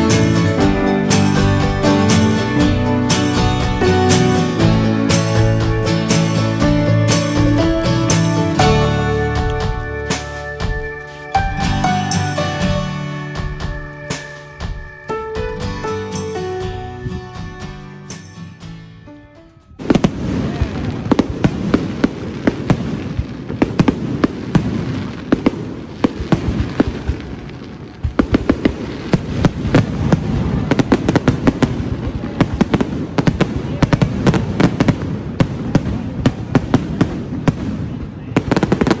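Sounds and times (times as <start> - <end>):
fireworks bangs and crackles: 0.0 - 18.4, 19.8 - 39.0.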